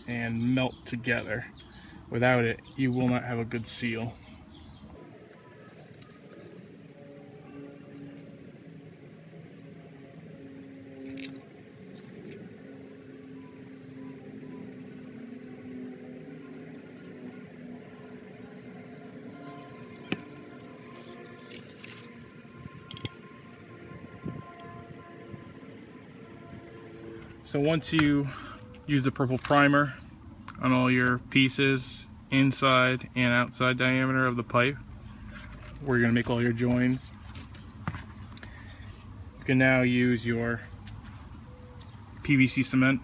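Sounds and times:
held low tones: 2.5 - 37.2.

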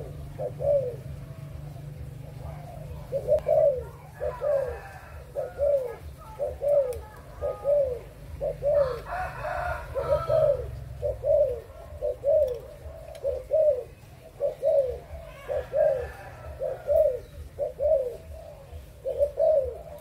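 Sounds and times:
dove cooing: 0.0 - 20.0.

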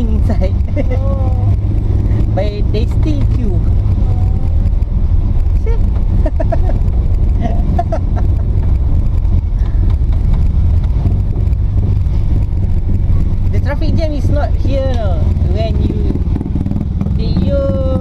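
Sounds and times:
road noise: 0.0 - 18.0
van engine rumble: 0.0 - 18.0.

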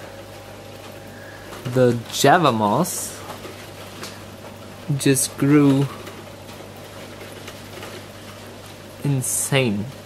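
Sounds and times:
aquarium equipment humming: 0.0 - 10.0.

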